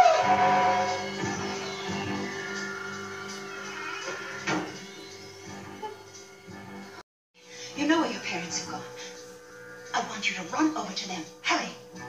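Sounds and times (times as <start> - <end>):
ominous sustained chord: 0.0 - 3.7.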